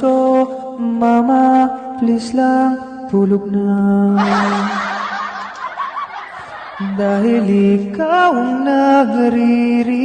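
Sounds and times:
breathy laugh: 4.2 - 7.5.

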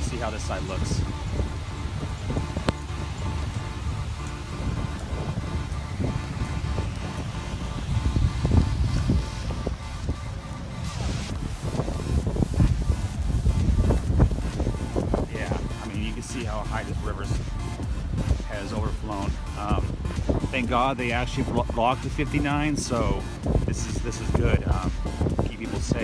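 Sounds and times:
faint background music: 0.0 - 26.0
wind buffeting microphone: 0.0 - 26.0.

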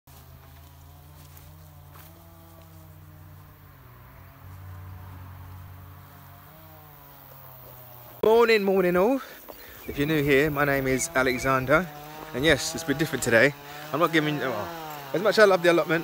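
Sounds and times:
insects buzzing: 0.1 - 16.0.

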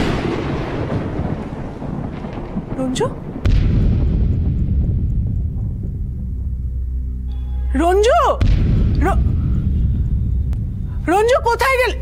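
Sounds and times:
boom crash with rumbling tail: 0.0 - 6.5, 8.4 - 10.1
deep rumble: 0.0 - 12.0.

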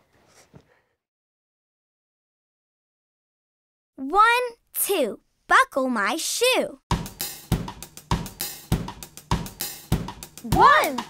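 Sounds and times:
drum-kit beat: 6.9 - 11.0.

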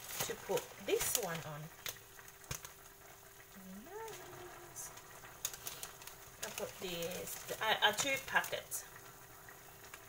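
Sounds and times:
vegetables simmering in a wok: 0.0 - 10.0.

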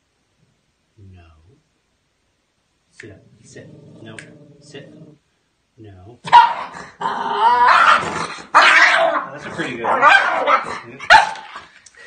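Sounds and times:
puppy barking: 6.3 - 6.8, 7.6 - 11.6
puppy crying: 6.3 - 11.4.

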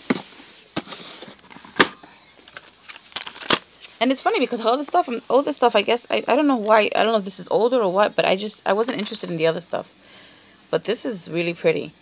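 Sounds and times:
rustling of cardboard and plastic: 0.0 - 5.6.

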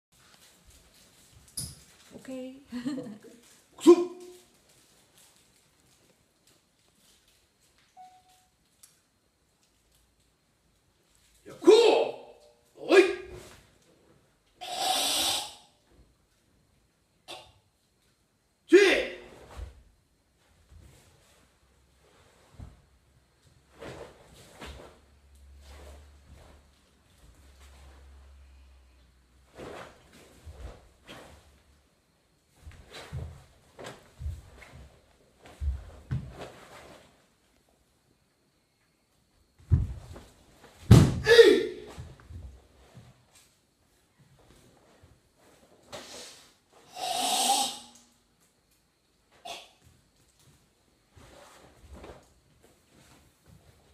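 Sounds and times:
person shouting kiai: 3.8 - 4.4, 11.5 - 13.5, 18.7 - 19.4, 41.2 - 42.0, 47.1 - 47.9
forceful hissing exhalation: 14.6 - 15.8, 46.0 - 48.1.

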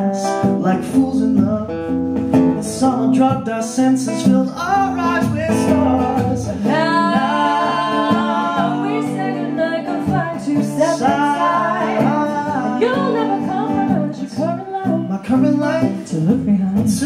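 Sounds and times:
man singing into a microphone: 0.0 - 9.3, 10.3 - 17.0
acoustic guitar: 0.0 - 17.0.

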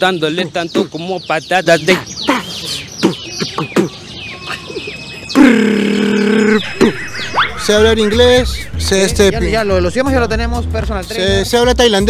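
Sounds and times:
beatboxing chirps and clicks: 2.3 - 3.9, 5.3 - 7.0.

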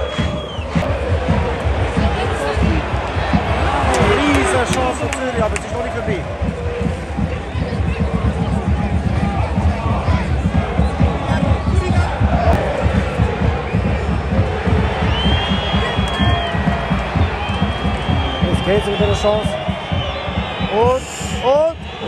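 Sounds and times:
high whistle: 0.0 - 0.8, 15.1 - 22.0
low crowd rumble: 0.0 - 20.6
crowd chanting and singing: 0.0 - 22.0.

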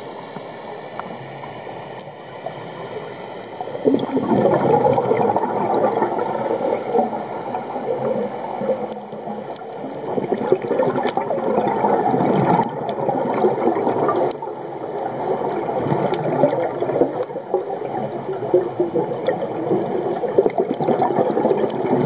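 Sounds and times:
underwater regulator bubbling: 3.7 - 22.0.

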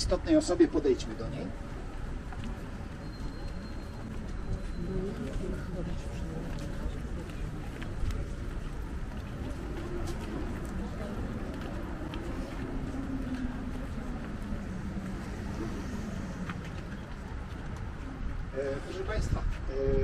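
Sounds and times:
low rumble of traffic: 0.0 - 20.0.

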